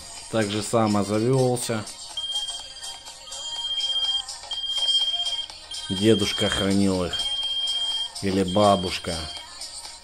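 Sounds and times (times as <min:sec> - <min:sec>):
high-pitched pager beep: 0:02.2 - 0:09.5.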